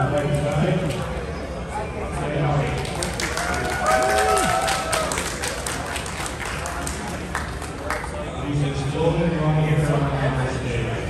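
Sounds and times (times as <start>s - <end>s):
people clapping: 2.6s - 8.3s.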